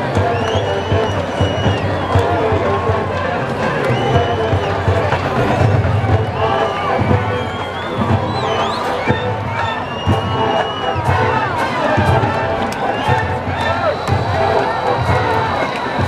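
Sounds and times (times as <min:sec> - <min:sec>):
crowd cheering: 0:00.0 - 0:16.0
marching band brass and drums: 0:00.0 - 0:16.0.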